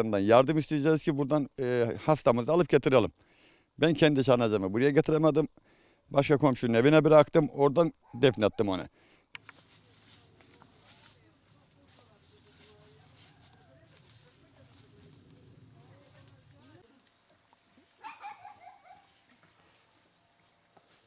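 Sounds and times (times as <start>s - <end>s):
dog barking: 8.0s - 8.8s, 18.0s - 19.2s.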